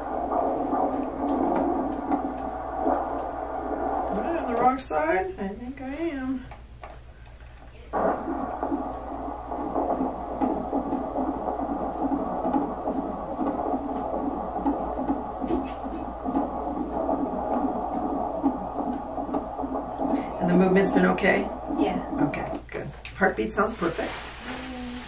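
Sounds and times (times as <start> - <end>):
fetal heartbeat on doppler monitor: 0.0 - 6.6, 7.9 - 24.5.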